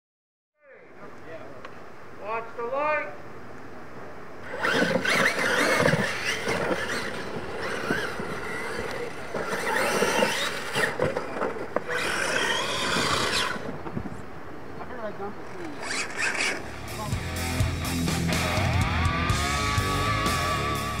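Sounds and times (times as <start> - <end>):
electric motors whining: 4.4 - 14.0, 15.4 - 17.8
tires rumbling on dirt track: 4.6 - 14.2.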